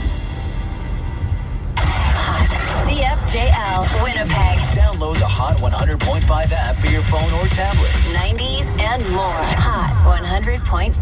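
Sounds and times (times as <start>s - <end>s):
car engine rumble: 0.0s - 11.0s
radio jingle through car speakers: 1.2s - 11.0s
announcer speaking: 2.2s - 11.0s.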